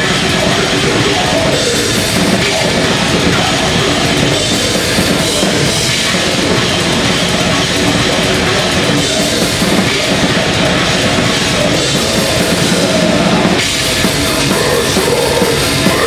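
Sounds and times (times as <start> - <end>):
distorted guitars: 0.0 - 16.0
rapid drumming: 0.0 - 16.0.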